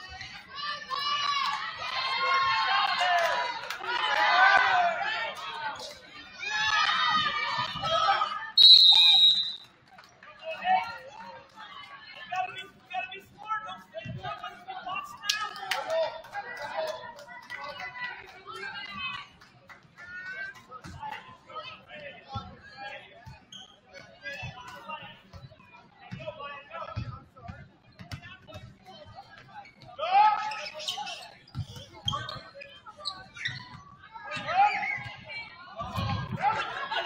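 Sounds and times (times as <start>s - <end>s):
people shouting and calling out: 0.0s - 9.6s, 34.1s - 37.0s.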